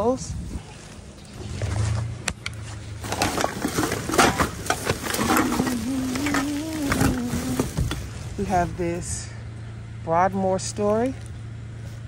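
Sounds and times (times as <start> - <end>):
plastic bags and newspapers rustling: 2.8 - 8.6.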